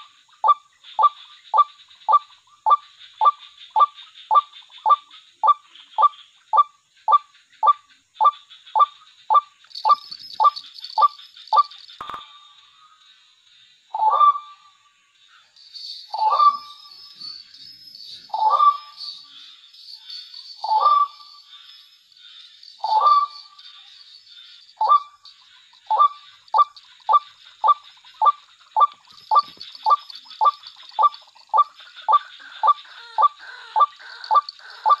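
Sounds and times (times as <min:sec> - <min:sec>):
bird calling: 0:00.0 - 0:13.0, 0:13.9 - 0:14.8, 0:15.4 - 0:35.0.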